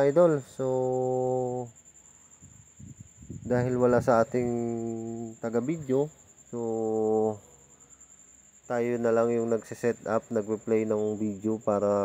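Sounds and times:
faint low thumps: 0:02.4 - 0:05.1
man speaking hesitantly: 0:03.5 - 0:07.4.

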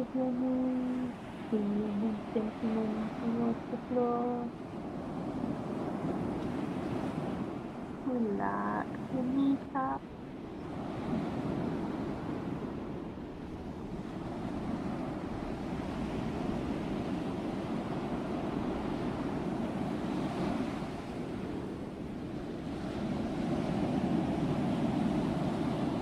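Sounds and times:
sea waves breaking on beach: 0:00.0 - 0:26.0.

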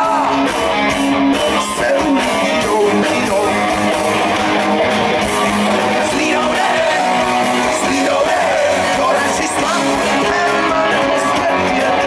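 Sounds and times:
electric guitars: 0:00.0 - 0:12.0
live rock band playing loudly: 0:00.0 - 0:12.0.

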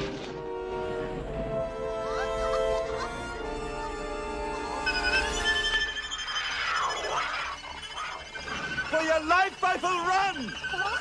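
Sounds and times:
cartoon film score music: 0:00.0 - 0:11.0.

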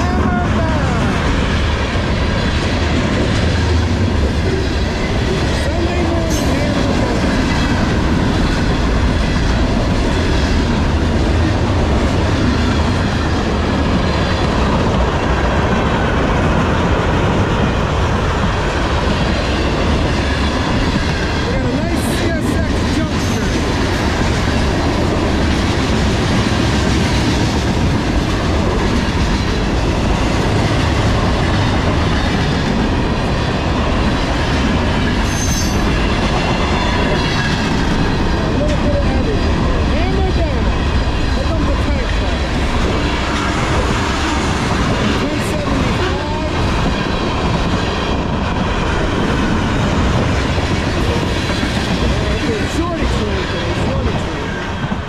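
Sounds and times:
freight train wheels rumbling on rail: 0:00.0 - 0:55.0.

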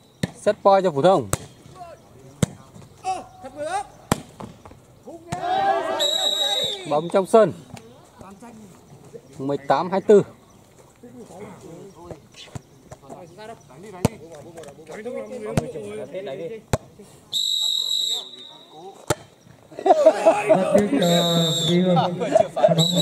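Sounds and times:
loud talking voices: 0:00.4 - 0:23.0
volleyball hand slaps: 0:04.1 - 0:04.6
referee's whistle: 0:05.8 - 0:07.2, 0:17.3 - 0:19.0, 0:20.9 - 0:21.9, 0:22.7 - 0:23.0.

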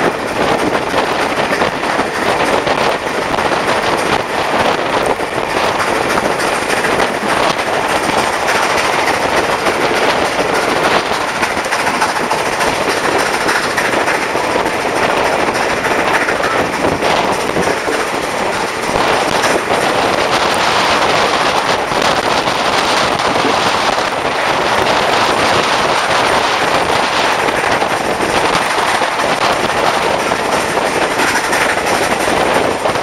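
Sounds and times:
steam train rattling on rails: 0:00.0 - 0:33.0
wind buffeting microphone: 0:00.0 - 0:33.0.

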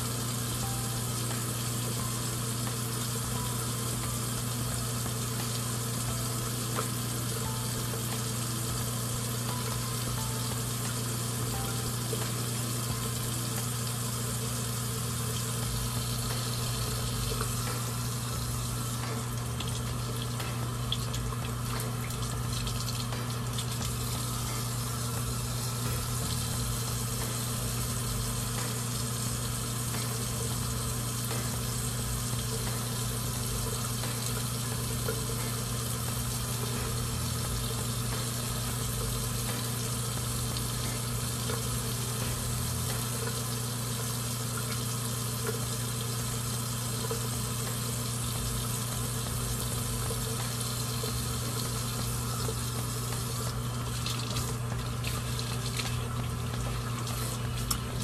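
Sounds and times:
low steady hum: 0:00.0 - 0:58.0
tap water running into sink: 0:00.0 - 0:58.0.

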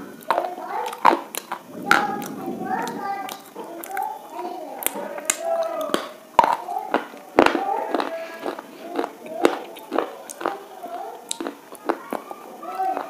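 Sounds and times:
stick crunching as chewed: 0:00.2 - 0:01.6, 0:04.8 - 0:13.0.

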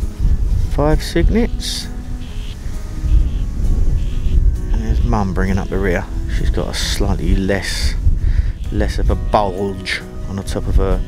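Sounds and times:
faint background music: 0:00.0 - 0:11.0
wind buffeting microphone: 0:00.0 - 0:11.0.

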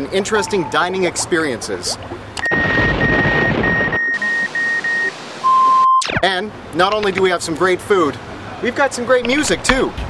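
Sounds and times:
lower steady beep: 0:02.4 - 0:06.2
short high beeps: 0:02.4 - 0:06.2.

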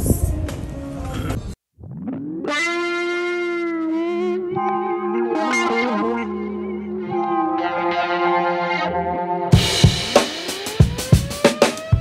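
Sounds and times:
electric guitar music: 0:02.0 - 0:12.0.

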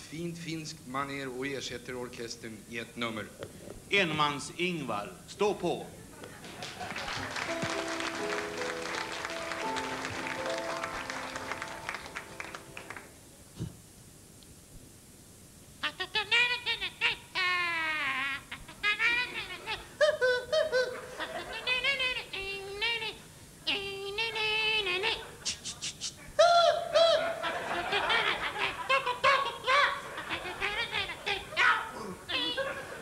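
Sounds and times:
man imitating instruments vocally: 0:15.8 - 0:32.6.

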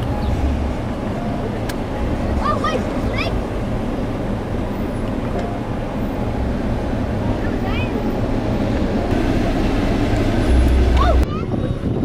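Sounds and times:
car running with low rumble: 0:00.0 - 0:12.0.

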